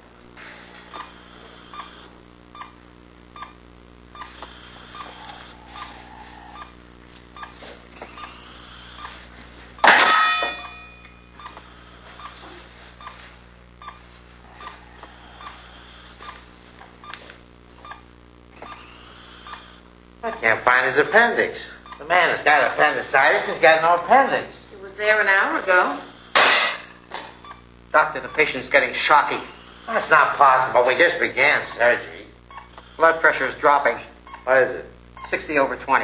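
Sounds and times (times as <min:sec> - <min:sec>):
low hum: 0:00.0 - 0:22.1
heart monitor beeping: 0:00.3 - 0:23.5, 0:26.0 - 0:30.8, 0:31.6 - 0:34.5, 0:35.1 - 0:35.6.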